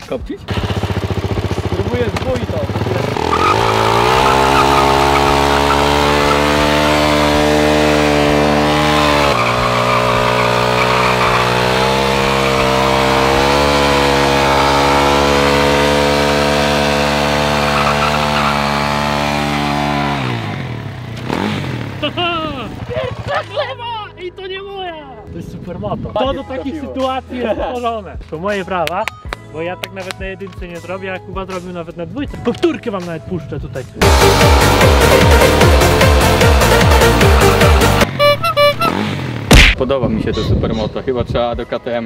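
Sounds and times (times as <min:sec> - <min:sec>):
motorcycle engine revving high: 0:00.5 - 0:22.9, 0:34.0 - 0:39.6
tyre spinning on asphalt: 0:03.1 - 0:20.0.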